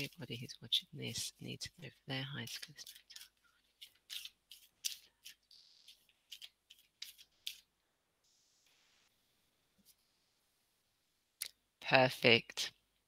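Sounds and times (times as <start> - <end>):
cards being shuffled: 2.4 - 7.7.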